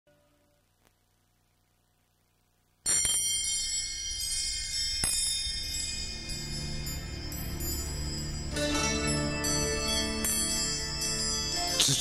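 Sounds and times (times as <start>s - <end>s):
high chimes ringing: 2.9s - 12.0s.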